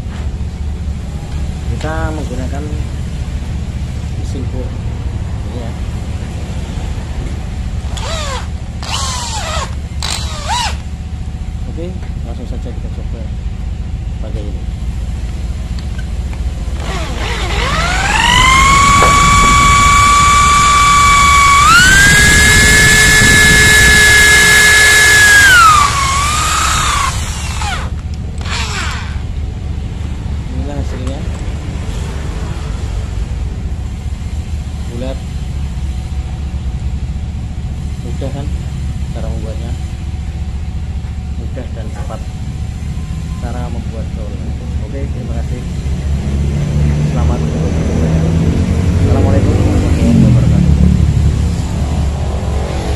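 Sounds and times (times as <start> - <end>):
power tool motor whining: 7.9 - 10.9, 16.8 - 29.3.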